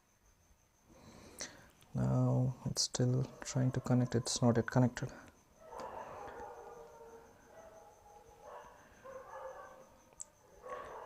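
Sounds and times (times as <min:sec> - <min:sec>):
dogs howling faintly: 0:03.0 - 0:11.0.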